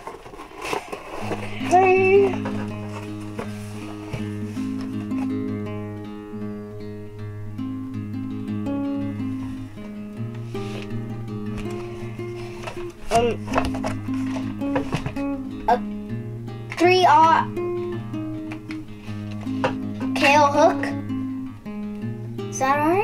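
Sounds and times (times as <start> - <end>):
instrumental guitar music: 0.6 - 23.0.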